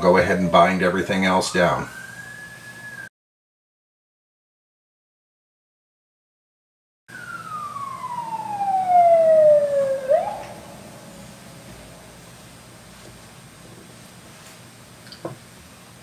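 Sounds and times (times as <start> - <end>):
emergency vehicle siren wailing: 0.0 - 3.1, 7.1 - 12.5.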